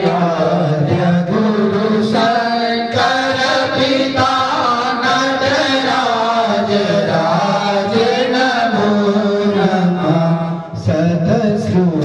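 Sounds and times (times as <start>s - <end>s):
priests chanting through microphones: 0.0s - 12.0s.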